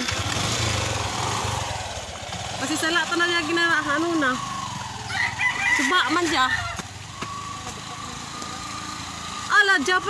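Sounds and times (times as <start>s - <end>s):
small motorcycle engine running: 0.0s - 10.0s.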